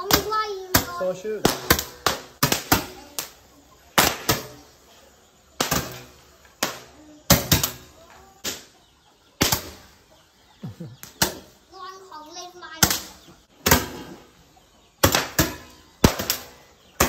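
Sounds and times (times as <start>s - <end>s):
fireworks popping: 0.0s - 3.4s.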